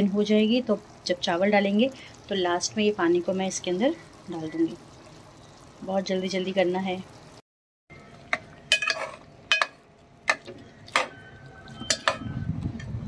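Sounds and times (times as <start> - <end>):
spoon clinking on metal pot: 8.3 - 11.1, 11.8 - 12.3.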